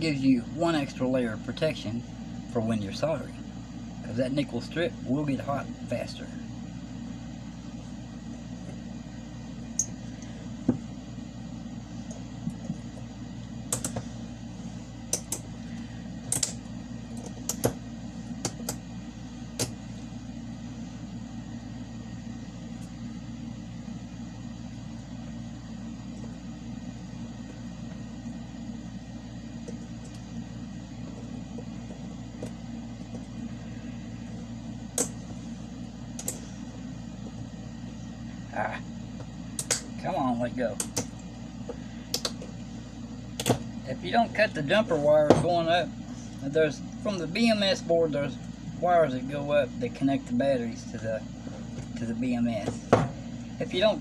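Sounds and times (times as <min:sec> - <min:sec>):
steady low hum: 0:00.0 - 0:54.0.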